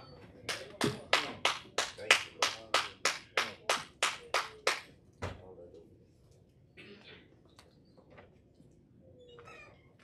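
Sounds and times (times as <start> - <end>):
rhythmic hand clapping: 0.4 - 5.0.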